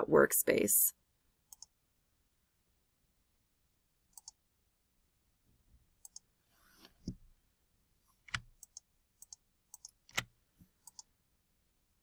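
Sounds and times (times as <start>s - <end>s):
computer mouse double-clicks: 1.5s - 1.7s, 4.1s - 4.4s, 6.0s - 6.3s, 8.3s - 11.1s.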